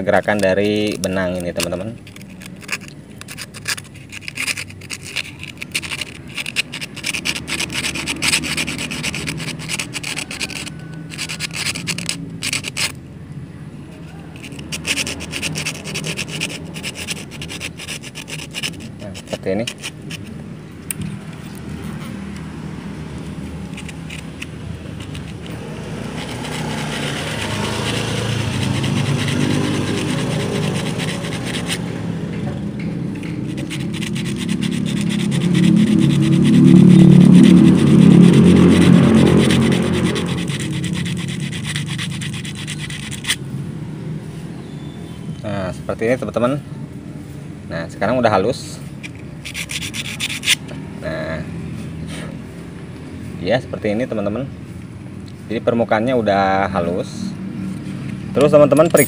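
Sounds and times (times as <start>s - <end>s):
sandpaper scratching on metal: 0.0s - 13.0s, 14.0s - 20.4s, 23.2s - 32.3s, 33.1s - 43.5s, 49.1s - 50.6s
droning vehicle engine: 0.0s - 45.5s.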